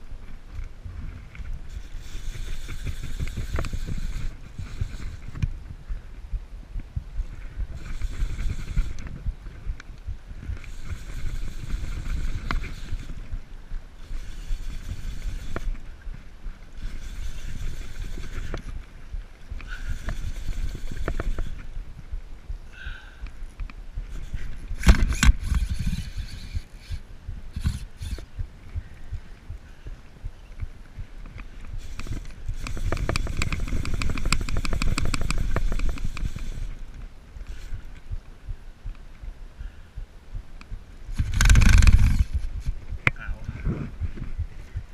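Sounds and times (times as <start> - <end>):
wind rumble on microphone: 0.0 - 44.9
fly reel buzzing: 1.6 - 5.5, 7.4 - 9.2, 10.4 - 18.9, 19.5 - 21.8, 24.0 - 28.4, 31.3 - 38.1, 41.1 - 42.8.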